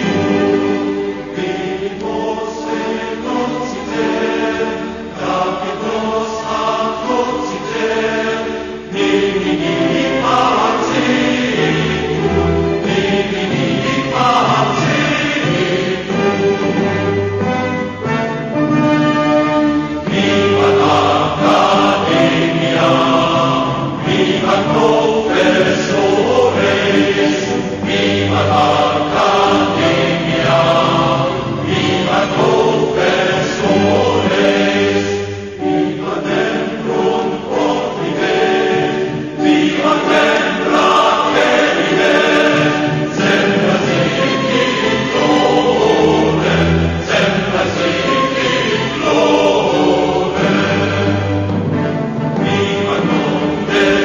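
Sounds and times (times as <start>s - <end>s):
choir singing sustained chords: 0.0s - 54.0s.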